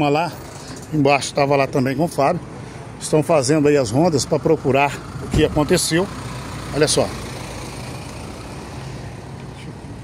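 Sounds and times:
street noise: 0.0s - 10.0s.

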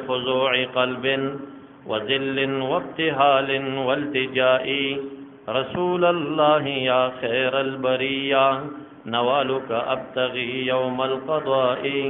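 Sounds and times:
man chanting devotional verse: 0.0s - 12.0s.

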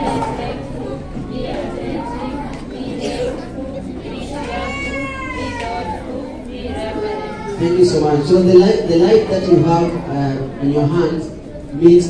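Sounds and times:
murmur of voices: 0.0s - 12.0s
young child crying: 4.4s - 6.3s.

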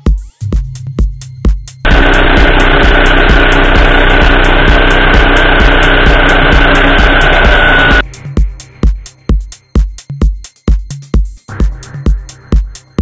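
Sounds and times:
power tool motor whining: 1.9s - 8.0s.

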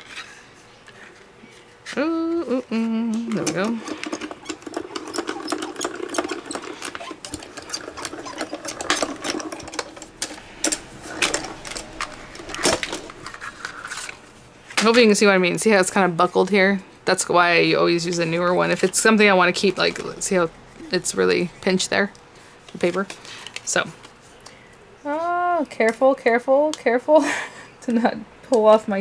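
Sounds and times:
person humming: 1.9s - 4.0s
die-cutting machine clicking and whirring: 3.1s - 13.4s.

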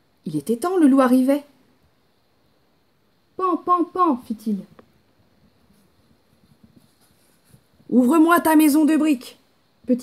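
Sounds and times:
woman speaking: 0.2s - 1.6s, 3.4s - 4.8s, 7.9s - 10.0s.

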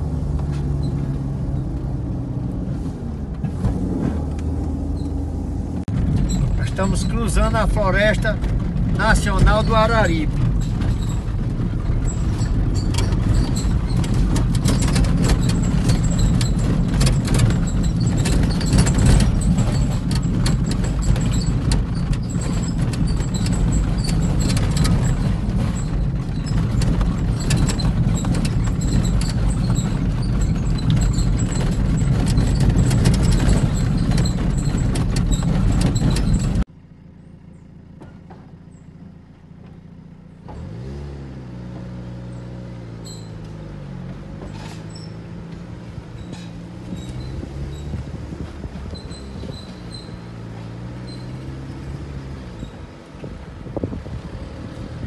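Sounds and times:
car road noise on dirt road: 0.0s - 55.0s
low vehicle engine hum: 0.0s - 55.0s
small clicks and rattles: 7.1s - 36.7s.

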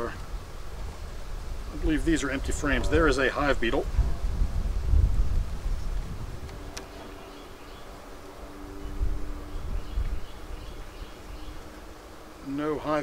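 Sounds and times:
honeybees buzzing: 0.3s - 13.0s
sharp click: 6.4s - 7.0s.

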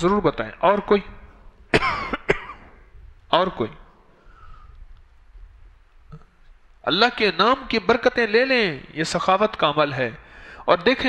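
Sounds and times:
man coughing: 1.7s - 2.8s.

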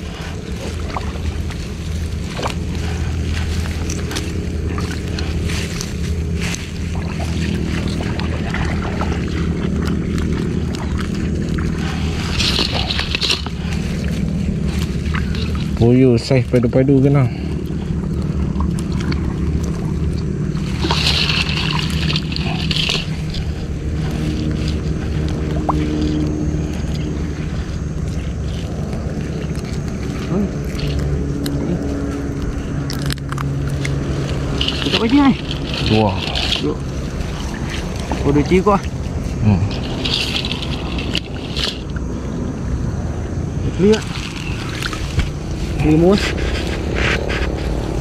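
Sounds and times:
fish and net handling rustles: 0.0s - 48.0s
motor running steadily: 0.0s - 48.0s.

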